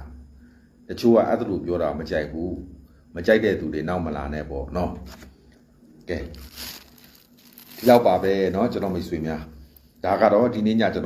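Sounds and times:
soft rustling hiss: 2.1 - 11.0
man speaking: 6.1 - 6.5, 7.8 - 11.0.

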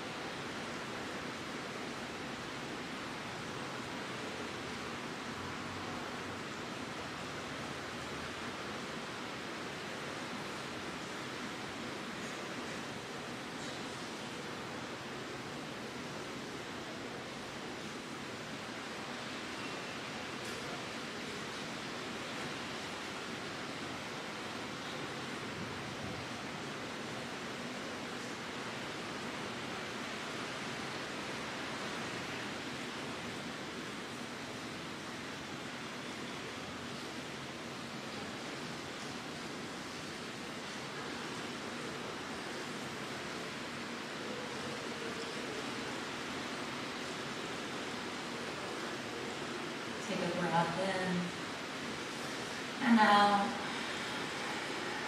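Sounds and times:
steady rain hiss: 0.0 - 55.0.

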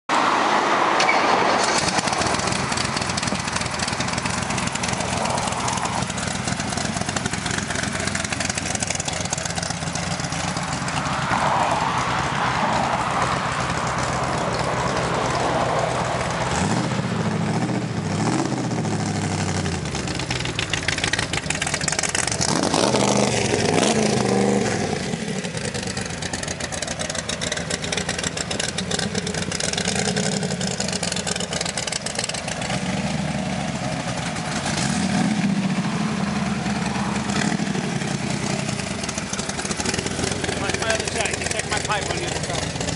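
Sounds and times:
car engine idling and revving: 0.1 - 42.9.

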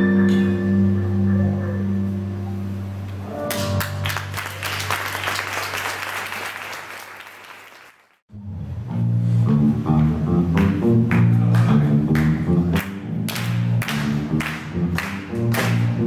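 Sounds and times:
audience applause: 3.5 - 8.2, 12.2 - 16.0.

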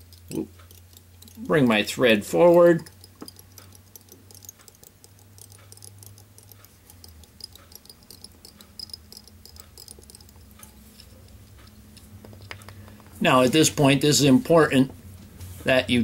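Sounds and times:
light ticks and clicks: 0.0 - 13.2
low steady hum: 0.0 - 16.0.

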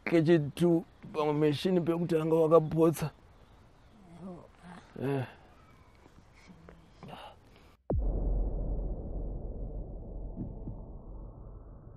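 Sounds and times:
low rumbling drone: 7.9 - 11.9
soft low pulses: 7.9 - 11.9.

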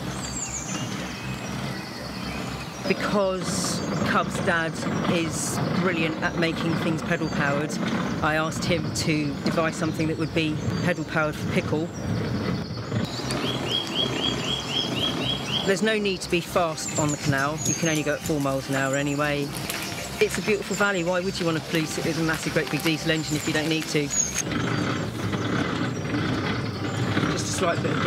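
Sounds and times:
songbird chirping fast: 0.0 - 28.0
wind buffeting microphone: 0.0 - 28.0.

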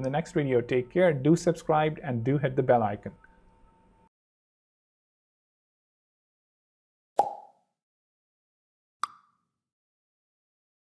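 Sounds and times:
sharp click-pop sound effect: 7.2 - 7.6.

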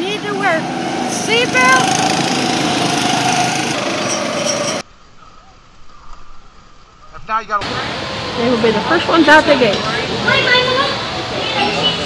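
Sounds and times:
go-kart engines droning: 0.0 - 4.8, 7.6 - 12.0.

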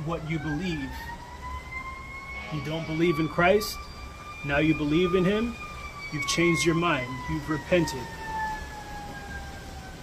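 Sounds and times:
distant siren wailing: 0.0 - 10.0.

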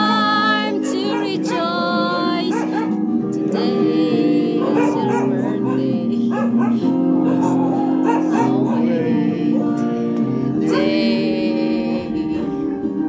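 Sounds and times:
group of voices singing: 0.0 - 13.0
recorded backing music: 0.0 - 13.0
dog barking: 0.8 - 3.0, 4.6 - 9.0, 12.5 - 13.0.

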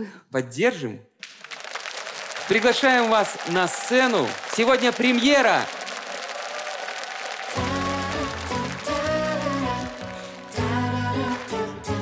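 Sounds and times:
audience applauding: 1.2 - 12.0
pop song instrumental: 7.1 - 12.0.

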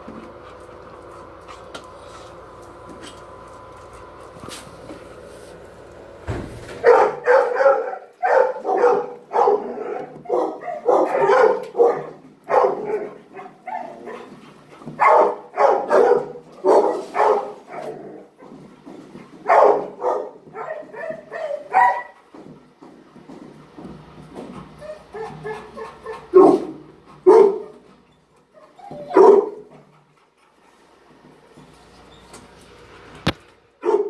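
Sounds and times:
dogs barking: 6.8 - 18.6, 19.4 - 22.5, 24.8 - 27.9, 28.6 - 29.9, 33.8 - 34.0.

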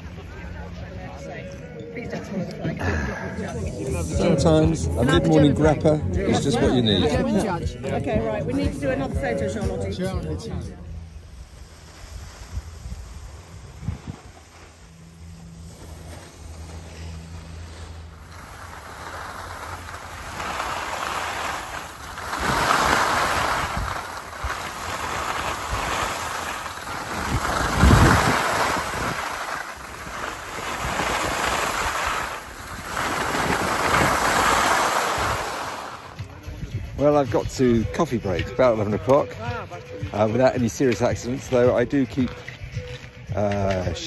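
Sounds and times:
skis hissing over snow: 10.9 - 37.2
wind on microphone: 11.2 - 14.9, 18.2 - 37.0
heavy wind thump on microphone: 11.4 - 14.8, 19.9 - 37.0.

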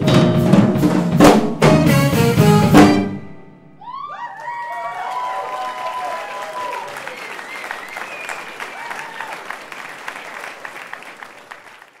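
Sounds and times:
audience cheering: 3.8 - 12.0
audience applauding: 4.0 - 12.0.

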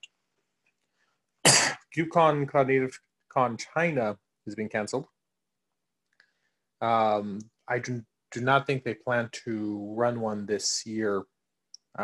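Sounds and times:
person coughing: 1.4 - 1.9.

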